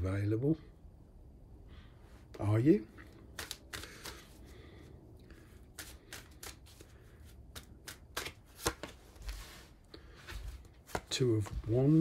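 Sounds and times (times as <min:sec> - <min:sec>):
cards being shuffled: 0:02.9 - 0:04.6, 0:05.3 - 0:12.0.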